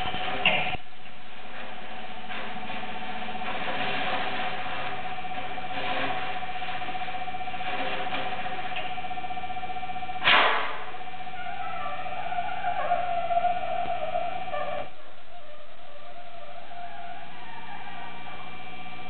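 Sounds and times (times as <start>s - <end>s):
loud burst of noise: 0.0s - 11.6s.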